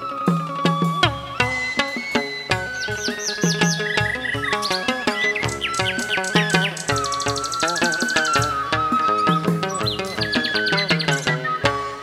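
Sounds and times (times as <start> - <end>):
ritual music of drums and lute: 0.0 - 12.0
songbird whistled chirps: 0.0 - 12.0.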